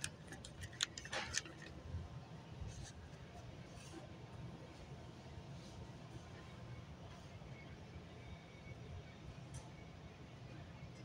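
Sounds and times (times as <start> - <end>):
sharp plastic clicks: 0.0 - 1.7.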